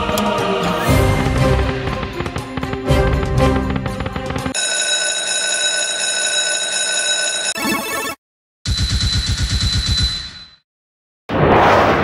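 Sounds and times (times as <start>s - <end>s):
electronic ringing tone: 4.5s - 10.6s
slot game music: 7.5s - 8.2s.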